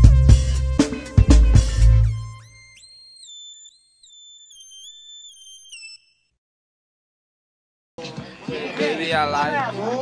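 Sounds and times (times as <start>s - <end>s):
whistle-like electronic melody: 0.9s - 6.4s.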